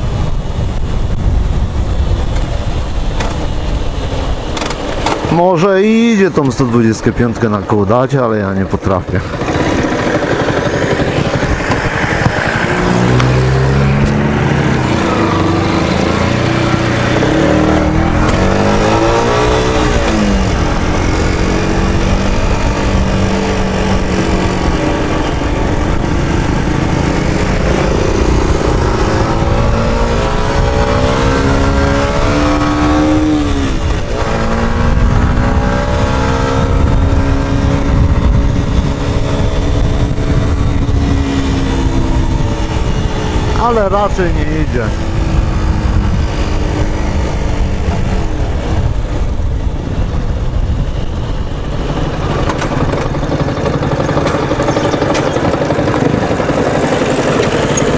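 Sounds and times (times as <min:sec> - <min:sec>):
wind noise over microphone: 0:00.0 - 0:07.4, 0:08.7 - 0:57.9
motorcycle engine revving: 0:09.0 - 0:57.9.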